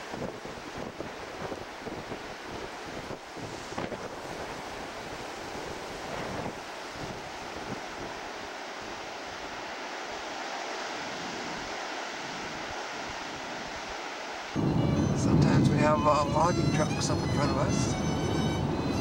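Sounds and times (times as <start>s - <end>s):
ocean surf over rocks: 0.0s - 19.0s
wind buffeting microphone: 0.0s - 19.0s.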